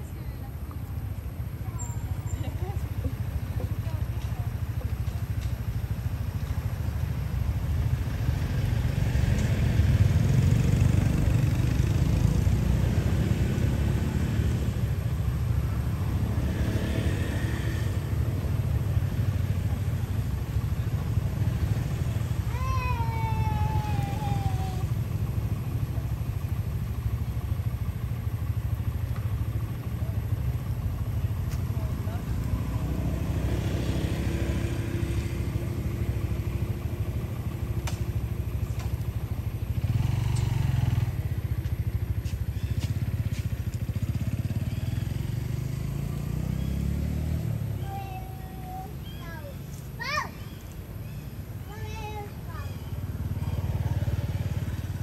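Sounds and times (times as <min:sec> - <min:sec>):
low engine-like rumble: 0:00.0 - 0:55.0.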